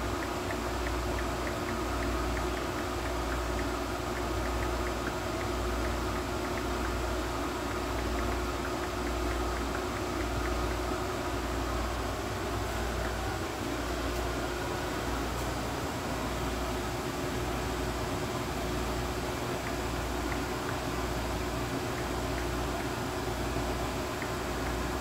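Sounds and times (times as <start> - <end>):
machine hum with low rumble: 0.0 - 25.0.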